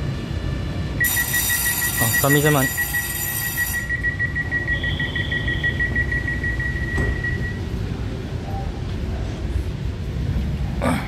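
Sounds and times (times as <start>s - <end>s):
high-pitched ringing tone: 1.0s - 7.7s.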